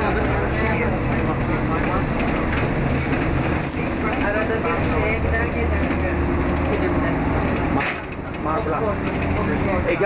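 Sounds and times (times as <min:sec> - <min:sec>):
people talking: 0:00.0 - 0:02.8, 0:03.6 - 0:07.2
bus engine low rumble: 0:00.0 - 0:10.0.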